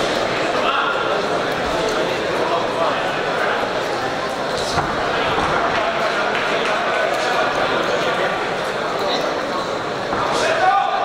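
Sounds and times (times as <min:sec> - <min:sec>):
crowd voices and shouting: 0:00.0 - 0:11.0.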